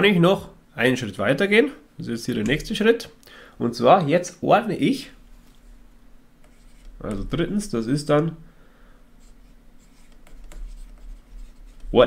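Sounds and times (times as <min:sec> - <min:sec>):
stylus tapping and scratching on screen: 0:05.4 - 0:08.4, 0:09.2 - 0:12.0.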